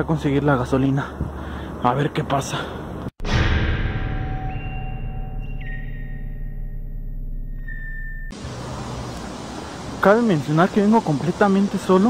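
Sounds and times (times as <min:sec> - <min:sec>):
eerie drone music: 0:03.3 - 0:09.2
rushing outdoor noise: 0:08.3 - 0:12.0.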